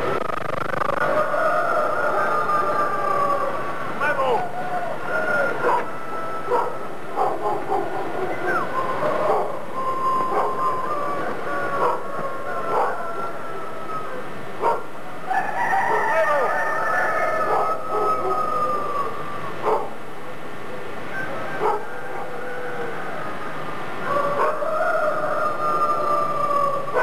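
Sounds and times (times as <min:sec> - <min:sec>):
dogs howling together: 0:01.0 - 0:20.0, 0:20.8 - 0:27.0
dogs yipping: 0:05.1 - 0:13.2, 0:13.9 - 0:14.9, 0:17.2 - 0:20.0, 0:21.1 - 0:22.4, 0:24.1 - 0:24.7, 0:26.8 - 0:27.0.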